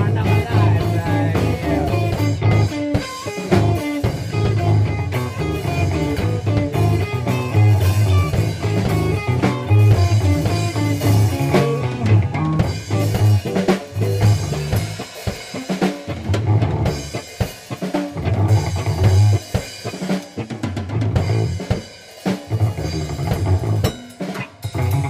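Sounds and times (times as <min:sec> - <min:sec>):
bass line: 0:00.0 - 0:17.3, 0:17.9 - 0:19.6, 0:20.4 - 0:21.8, 0:22.4 - 0:25.0
drum kit playing: 0:00.0 - 0:25.0.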